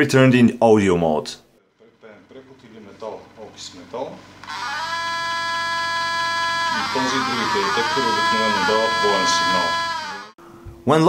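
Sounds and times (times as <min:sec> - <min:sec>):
speech-like sounds: 0:06.7 - 0:10.2.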